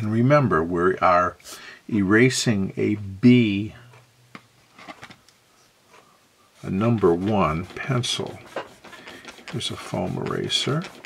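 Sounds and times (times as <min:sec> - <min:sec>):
eraser rubbing on paper: 0:06.6 - 0:11.0
eraser tapping on paper: 0:07.0 - 0:11.0.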